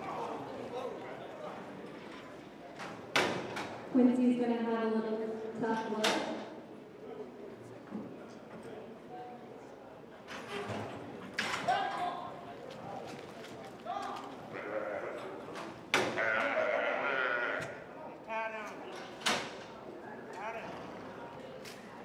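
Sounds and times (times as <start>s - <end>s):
calf bleating: 14.5s - 15.4s, 16.1s - 17.8s.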